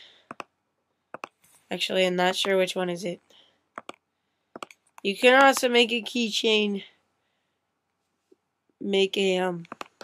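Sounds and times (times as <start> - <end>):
computer mouse clicks: 0.2 - 0.5, 1.1 - 1.6, 3.7 - 6.2, 9.6 - 10.0.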